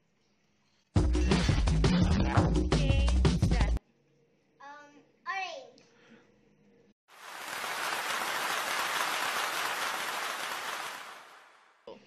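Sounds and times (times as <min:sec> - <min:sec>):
dense rain-like hiss: 0:07.1 - 0:11.4.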